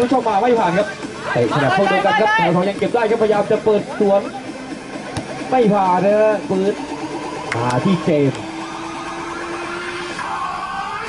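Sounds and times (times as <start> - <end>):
man talking: 0.0 - 4.4, 5.5 - 6.8, 7.5 - 8.4.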